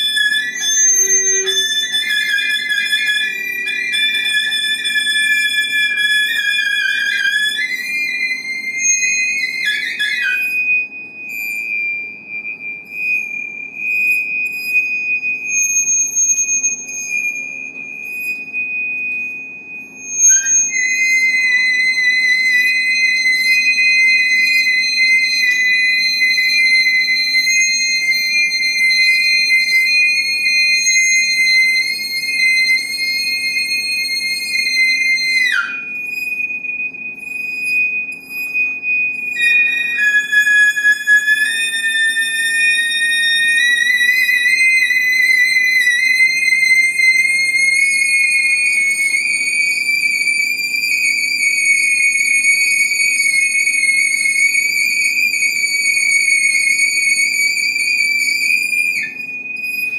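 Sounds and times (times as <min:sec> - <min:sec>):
bowed metal percussion tones: 0:00.0 - 0:59.9.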